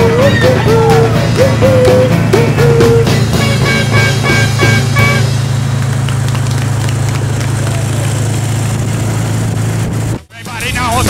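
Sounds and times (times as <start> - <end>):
song with singing voice: 0.0 - 3.6
car engine humming: 0.0 - 11.0
street noise: 0.0 - 11.0
voices: 10.3 - 11.0.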